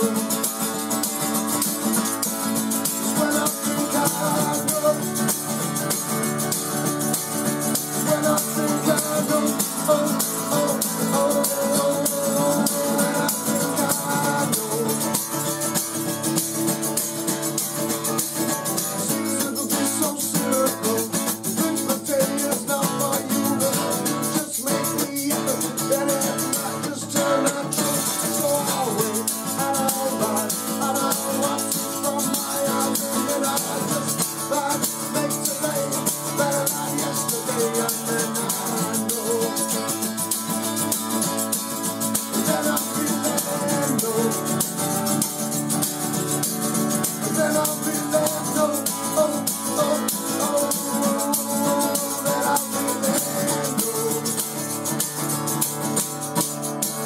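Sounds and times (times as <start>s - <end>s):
acoustic guitar strumming: 0.0s - 57.0s
man singing: 0.0s - 57.0s
shaker percussion: 0.0s - 57.0s.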